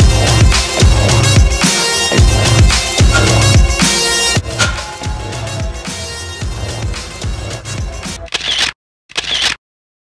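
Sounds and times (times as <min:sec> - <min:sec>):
music: 0:00.0 - 0:08.3.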